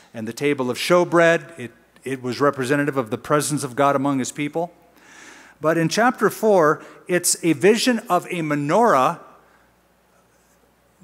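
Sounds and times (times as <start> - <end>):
man speaking: 0.1 - 4.8, 5.6 - 9.3.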